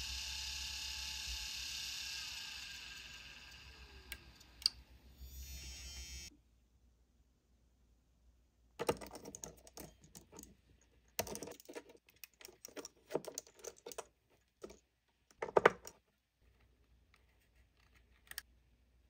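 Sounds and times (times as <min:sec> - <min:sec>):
hard drive spinning whine: 0:00.0 - 0:06.3
screwdriver clicks and rattles: 0:08.8 - 0:16.0.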